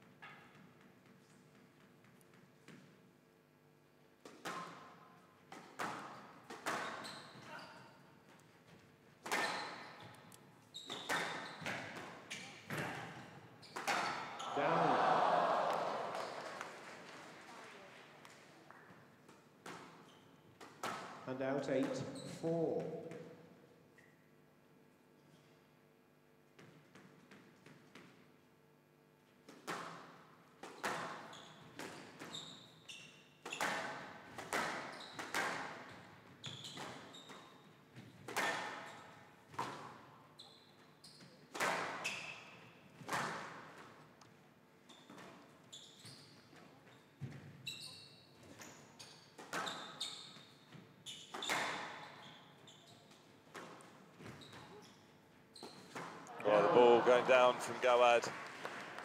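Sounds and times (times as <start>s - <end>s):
squash ball hit by racket: 33.5s - 35.8s.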